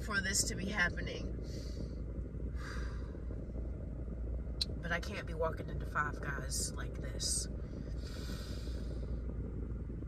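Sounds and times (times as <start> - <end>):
car engine idling: 0.0 - 10.0
soft breath: 1.4 - 3.4, 7.6 - 9.2.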